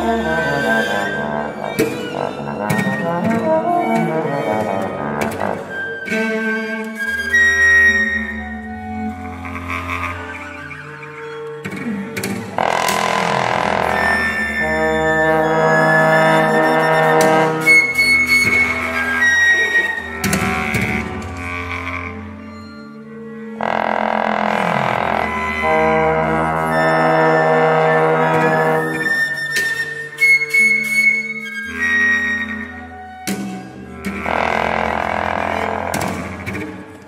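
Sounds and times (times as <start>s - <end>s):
bowed cello low notes: 0.0s - 30.3s, 31.4s - 37.0s
clarinet: 0.0s - 37.0s
flute: 0.0s - 37.0s
viola: 0.0s - 37.0s
bass trombone low notes: 12.6s - 17.6s, 23.6s - 28.8s, 34.1s - 36.5s.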